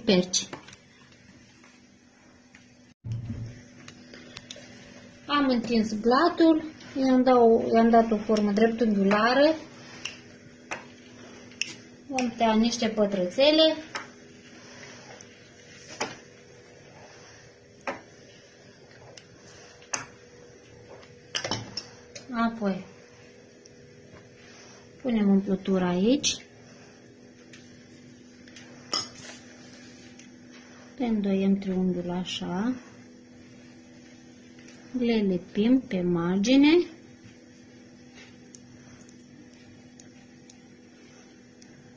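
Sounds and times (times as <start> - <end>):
faint steady hum: 0.0 - 41.9.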